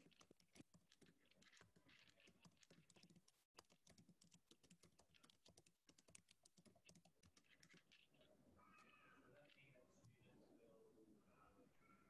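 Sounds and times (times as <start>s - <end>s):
computer keyboard typing: 0.0s - 8.0s.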